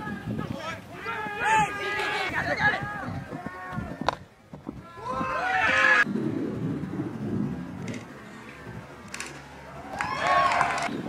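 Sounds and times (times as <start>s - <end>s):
spectators yelling and cheering: 0.0s - 4.0s, 4.8s - 6.1s, 9.5s - 10.9s.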